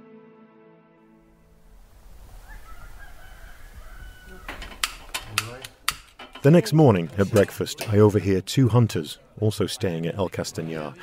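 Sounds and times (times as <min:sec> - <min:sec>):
morning ambience: 0:01.3 - 0:11.0
rooster crowing faintly: 0:02.3 - 0:04.9.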